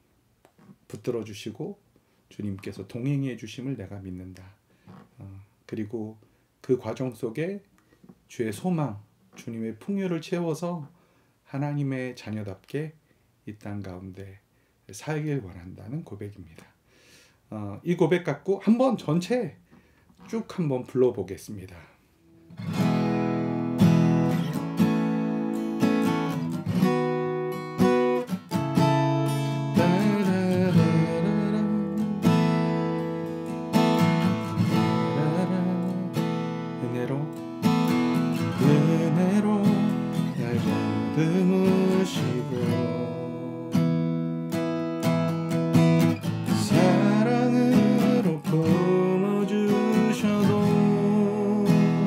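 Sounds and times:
acoustic guitar strummed chords: 0:22.5 - 0:52.0
man singing: 0:29.4 - 0:32.3, 0:34.7 - 0:37.4, 0:38.4 - 0:44.1, 0:46.5 - 0:52.0.

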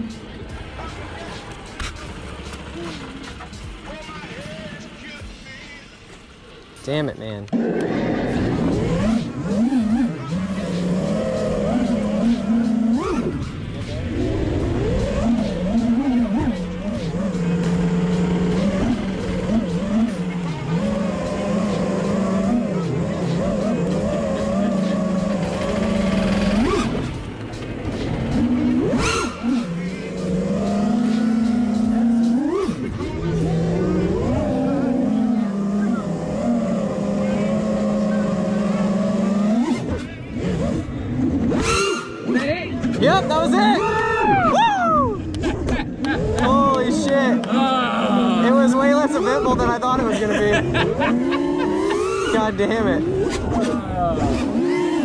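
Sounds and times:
drone motors whining: 0:07.6 - 0:55.0.

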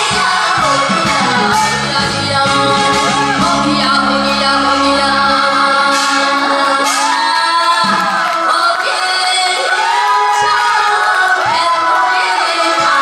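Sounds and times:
amplified music: 0:00.0 - 0:08.4
woman singing: 0:00.0 - 0:13.0.

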